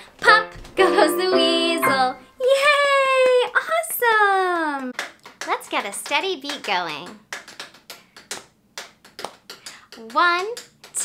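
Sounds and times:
sharp hand taps: 0:05.0 - 0:11.0.

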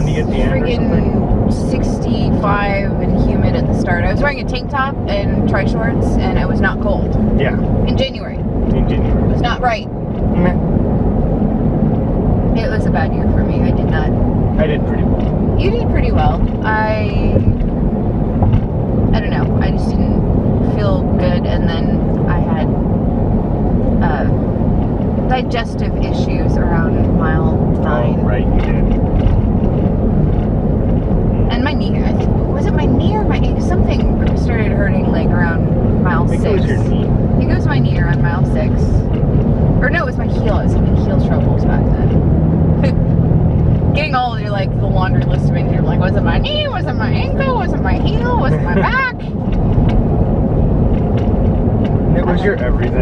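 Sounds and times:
people talking: 0:00.0 - 0:10.7, 0:12.6 - 0:17.6, 0:19.1 - 0:22.7, 0:24.0 - 0:24.4, 0:25.3 - 0:28.9, 0:31.5 - 0:39.0, 0:39.8 - 0:42.2, 0:44.0 - 0:49.4, 0:52.1 - 0:53.0
car road and engine rumble: 0:00.0 - 0:53.0.

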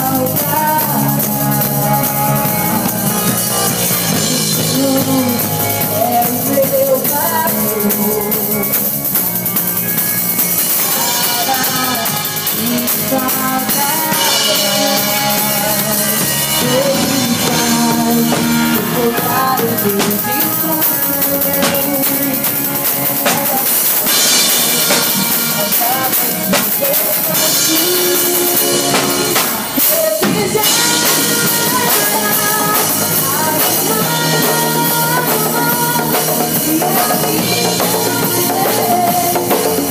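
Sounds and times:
drum kit with cymbals: 0:00.0 - 0:39.9
electric bass: 0:00.0 - 0:39.9
electric guitar: 0:00.0 - 0:39.9
rock band playing: 0:00.0 - 0:39.9.

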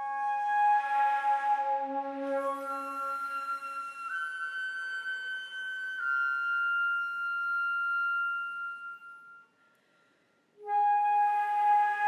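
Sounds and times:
flute holding long note: 0:00.0 - 0:09.6, 0:10.6 - 0:12.0.

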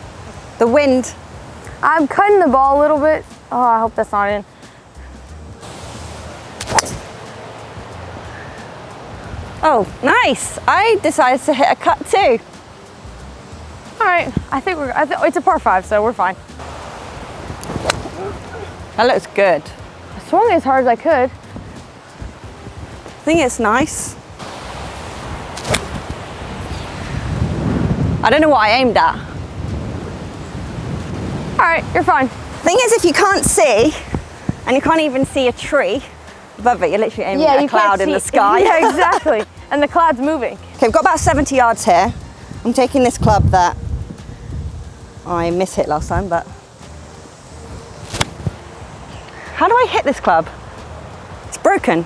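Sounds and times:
golf club striking ball: 0:06.6 - 0:07.2, 0:17.6 - 0:18.3, 0:25.6 - 0:26.2, 0:48.0 - 0:48.5
wind noise on microphone: 0:11.8 - 0:52.0.

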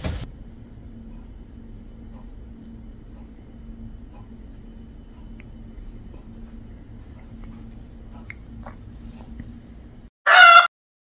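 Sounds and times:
faint constant hum: 0:00.0 - 0:10.1
low steady rumble: 0:00.0 - 0:10.1.

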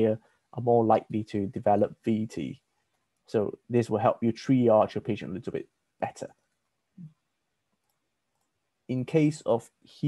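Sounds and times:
short low voice sound: 0:00.0 - 0:02.5, 0:03.4 - 0:06.3, 0:08.9 - 0:09.6.

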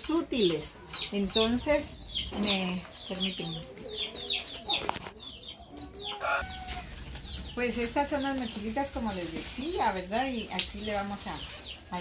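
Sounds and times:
chicken clucking: 0:02.2 - 0:07.6
chicken peeps: 0:03.6 - 0:07.5.

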